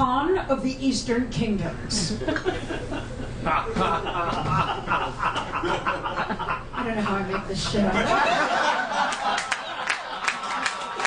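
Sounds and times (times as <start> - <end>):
woman reading aloud: 0.0 - 2.1, 6.8 - 8.1
woman laughing: 1.9 - 9.5.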